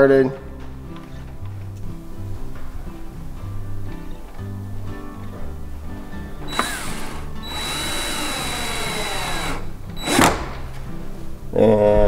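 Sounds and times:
cordless drill driving screw into wood: 0:06.5 - 0:10.8.

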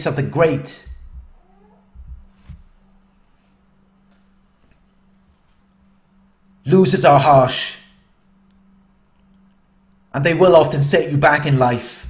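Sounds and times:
faint steady hum: 0:00.0 - 0:12.0
soft low thumps: 0:00.8 - 0:03.2
animal call rising in pitch: 0:01.2 - 0:02.3.

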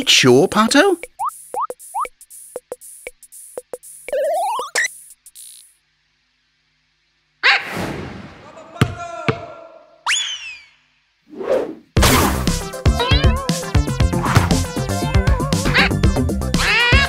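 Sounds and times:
cartoon hit with swish: 0:12.0 - 0:12.5
background music: 0:12.0 - 0:17.0.

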